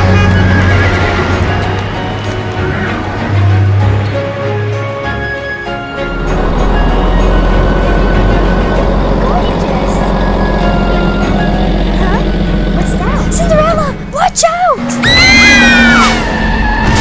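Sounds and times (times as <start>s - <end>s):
bus engine rumble: 0.0s - 4.2s, 6.0s - 15.4s
background music: 0.0s - 17.0s.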